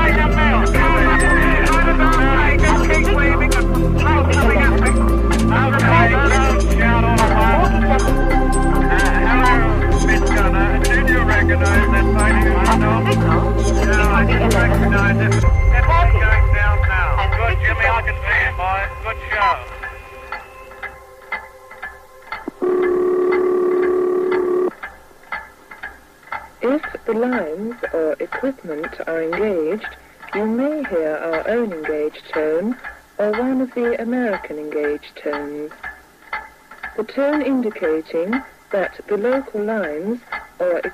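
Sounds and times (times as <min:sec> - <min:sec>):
bass-heavy music: 0:00.0 - 0:20.4
voice in old recording: 0:00.0 - 0:21.0, 0:26.6 - 0:36.2, 0:36.8 - 0:40.9
telephone signalling tone: 0:22.5 - 0:24.7.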